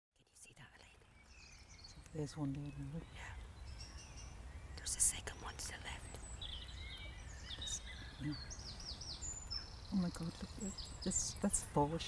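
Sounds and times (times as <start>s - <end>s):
quiet whispering: 0.2s - 1.2s, 2.7s - 3.5s, 4.8s - 6.3s, 7.5s - 8.4s
bird chirps: 0.2s - 12.0s.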